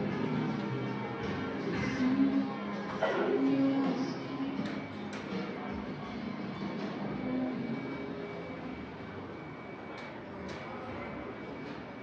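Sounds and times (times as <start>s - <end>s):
indoor food hall din: 0.0s - 12.0s.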